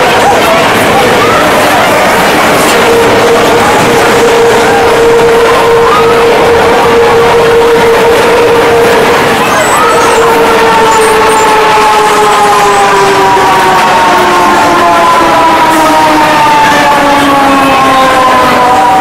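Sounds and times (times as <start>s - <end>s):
roller coaster rolling roar: 0.0s - 19.0s
humming tone: 2.5s - 12.2s.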